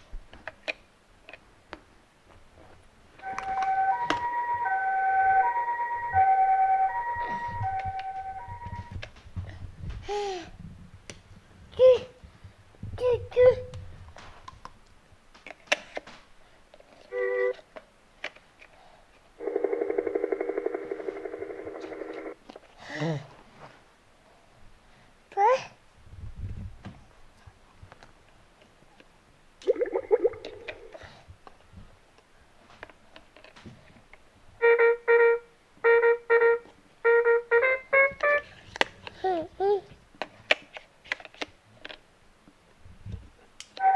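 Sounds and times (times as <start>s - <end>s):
toy electronic trumpet tune: 3.2s - 9.0s, 17.1s - 17.6s, 34.6s - 38.5s.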